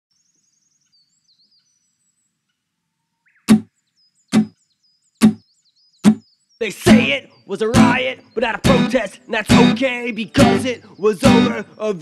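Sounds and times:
strummed acoustic guitar chords: 6.0 - 12.0.

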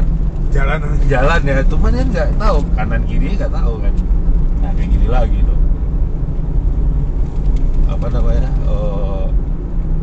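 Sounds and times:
engine and tyre rumble: 0.0 - 10.0.

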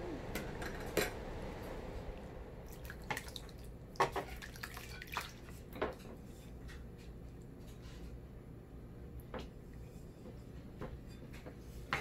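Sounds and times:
kitchenware clinking: 0.4 - 1.2.

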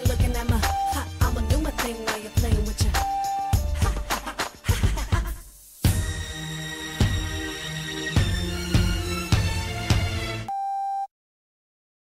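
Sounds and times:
dance-pop music: 0.0 - 6.3.

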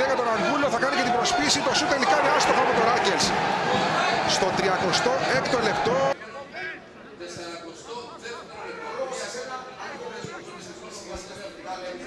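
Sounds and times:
quiet crowd background: 0.0 - 12.0
stadium crowd shouting: 0.7 - 6.2.

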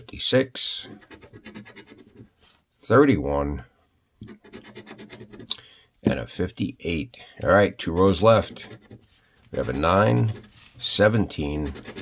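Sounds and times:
coin scratching lottery ticket: 0.9 - 2.2, 4.3 - 5.5, 9.6 - 12.0.

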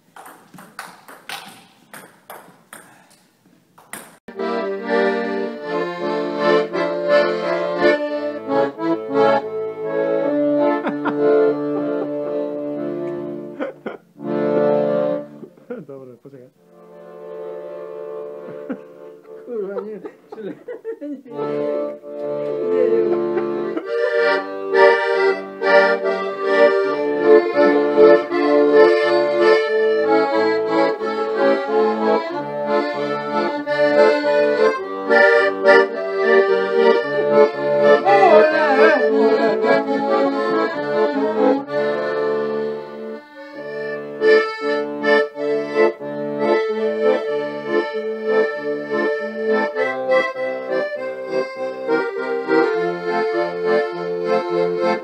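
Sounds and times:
piano accordion playing: 4.2 - 15.7, 16.5 - 55.0.

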